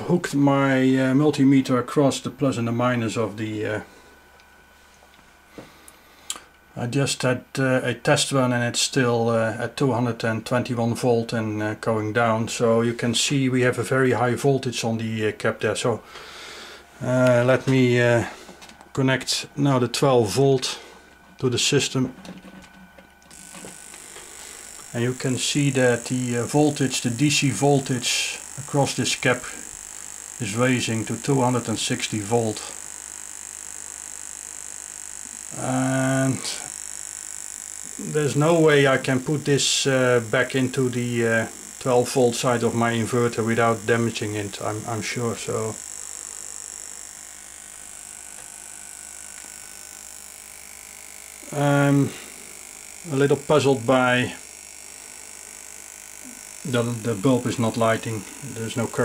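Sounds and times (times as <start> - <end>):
electrical hum: 0.0 - 59.0
high-pitched inverter whine: 0.0 - 59.0.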